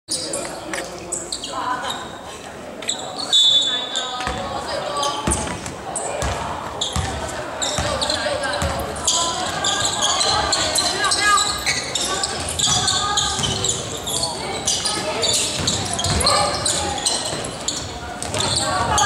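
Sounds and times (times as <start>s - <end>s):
voices calling out: 0.1s - 19.0s
basketball bouncing on wooden floor: 15.5s - 16.3s.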